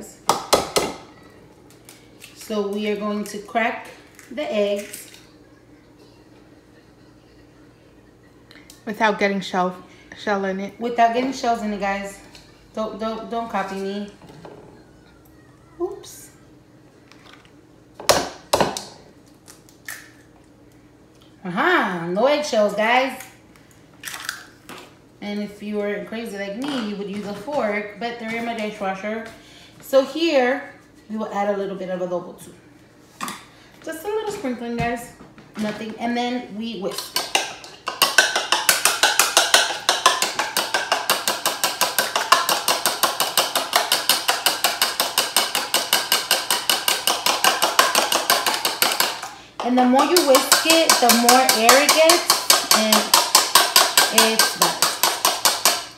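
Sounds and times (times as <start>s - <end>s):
egg tapping on ceramic bowl: 37.2s - 49.3s, 50.0s - 55.8s.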